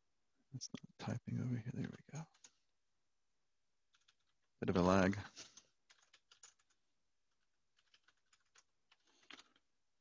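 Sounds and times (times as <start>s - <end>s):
computer keyboard typing: 2.2s - 2.6s, 3.9s - 4.5s, 5.4s - 9.7s.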